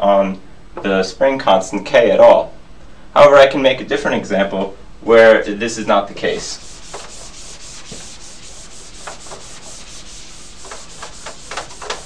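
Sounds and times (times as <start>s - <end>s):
eraser scrubbing whiteboard: 6.3s - 12.0s.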